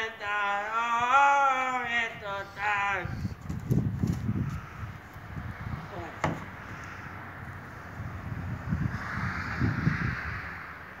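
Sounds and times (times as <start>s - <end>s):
wind buffeting microphone: 0.9s - 11.0s.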